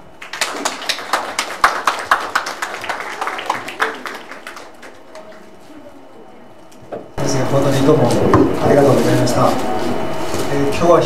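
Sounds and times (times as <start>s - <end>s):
audience applauding: 0.1s - 5.6s.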